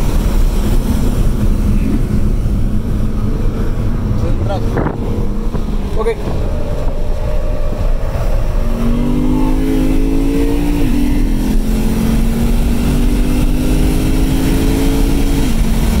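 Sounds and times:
car engine accelerating hard: 0:00.0 - 0:16.0
road and wind rumble: 0:00.0 - 0:16.0.

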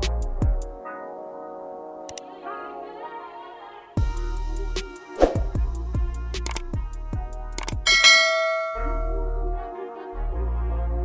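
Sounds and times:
background music with low bass: 0:00.0 - 0:02.2, 0:03.9 - 0:11.0
bell-like chime: 0:07.9 - 0:09.2.

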